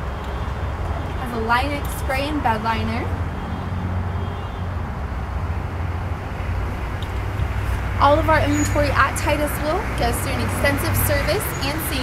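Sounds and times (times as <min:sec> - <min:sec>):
low rumble of motor vehicles: 0:00.0 - 0:12.0.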